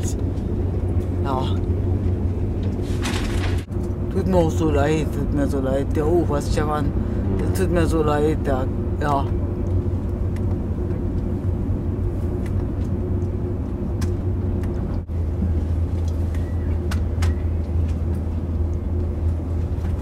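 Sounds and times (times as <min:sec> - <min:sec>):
train rumble inside carriage: 0:00.0 - 0:20.0.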